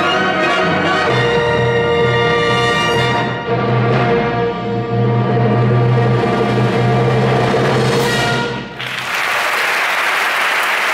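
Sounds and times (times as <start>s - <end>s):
audience applause: 8.8s - 10.9s.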